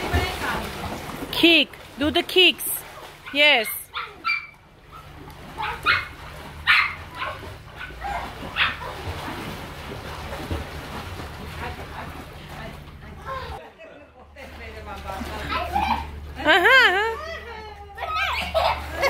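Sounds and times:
water splashing: 0:00.0 - 0:13.6, 0:14.4 - 0:19.0
small dog barking and yipping: 0:03.2 - 0:09.2.

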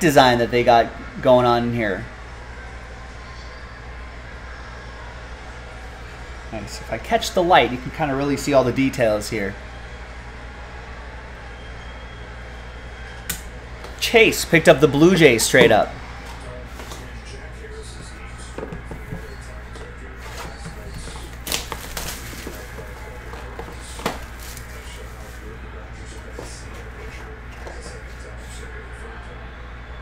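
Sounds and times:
plastic wrapper and cardboard rustling: 0:20.2 - 0:25.4.

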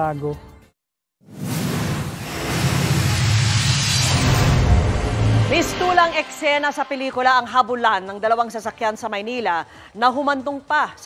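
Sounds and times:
whoosh: 0:01.3 - 0:07.8
deep sustained drone: 0:02.2 - 0:07.5.

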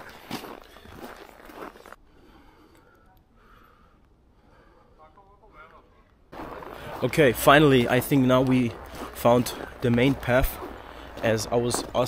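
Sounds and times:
footsteps in snow: 0:00.0 - 0:02.0, 0:06.3 - 0:12.0
outdoor ambience: 0:00.0 - 0:12.0
wind: 0:00.0 - 0:12.0.

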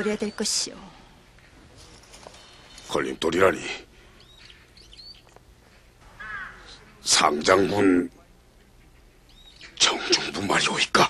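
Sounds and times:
faint small bird chirp: 0:04.2 - 0:05.4, 0:08.8 - 0:09.8
crow cawing: 0:06.0 - 0:07.1.

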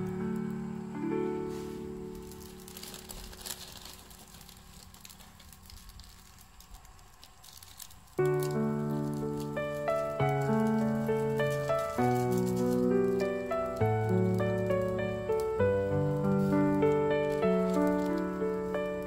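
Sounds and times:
background music with held notes: 0:00.0 - 0:04.0, 0:08.2 - 0:19.0
faint fire crackles: 0:00.0 - 0:19.0.

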